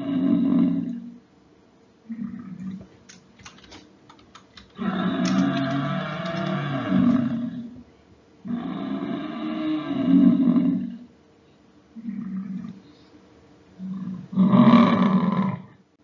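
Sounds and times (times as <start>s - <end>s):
faint clicks: 2.6s - 7.2s.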